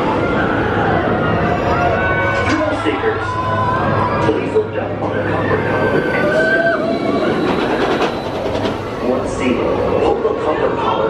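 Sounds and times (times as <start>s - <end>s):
roller coaster train rushing past: 0.0s - 11.0s
wheels rattling on track: 4.3s - 10.8s.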